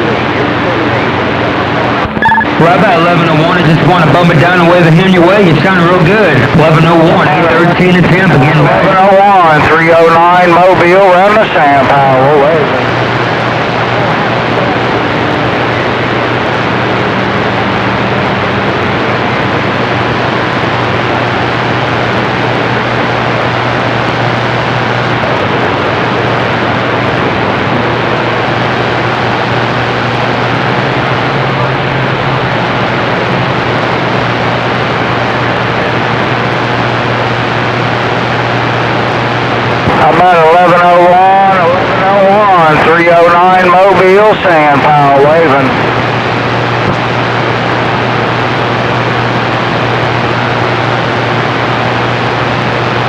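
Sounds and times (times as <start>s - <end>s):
radio static rushing: 0.0s - 53.0s.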